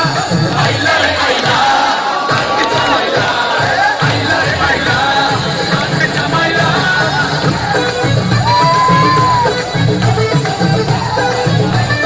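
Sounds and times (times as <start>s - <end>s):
loud dance music: 0.0s - 12.0s
audience cheering and shouting: 0.5s - 11.8s.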